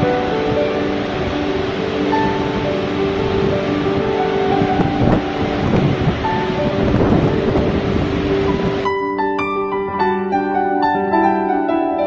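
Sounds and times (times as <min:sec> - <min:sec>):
soft sustained music notes: 0:00.0 - 0:12.0
waterfall rushing: 0:00.0 - 0:12.0.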